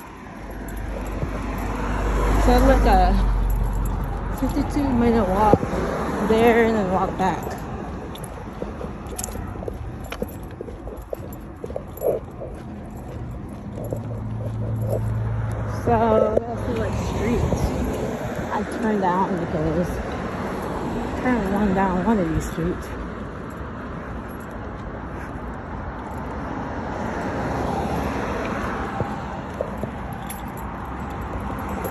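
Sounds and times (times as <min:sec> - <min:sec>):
wind rumble: 0:00.0 - 0:21.3
footsteps on concrete: 0:00.0 - 0:31.9
passing vehicle traffic noise: 0:00.0 - 0:31.9.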